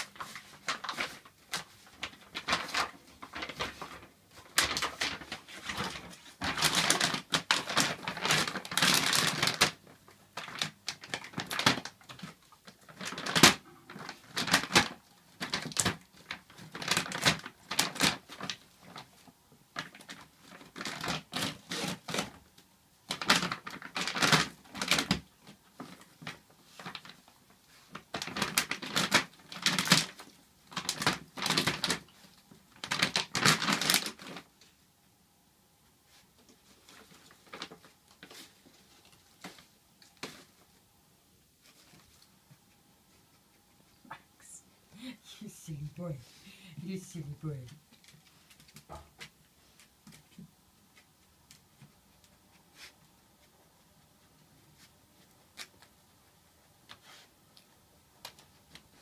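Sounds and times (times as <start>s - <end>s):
dog chewing plastic bag: 0.0s - 34.6s, 36.7s - 40.6s.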